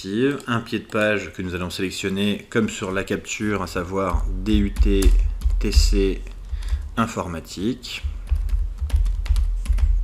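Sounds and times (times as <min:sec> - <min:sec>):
computer keyboard typing: 0:00.3 - 0:01.4, 0:02.1 - 0:07.0, 0:08.0 - 0:10.0.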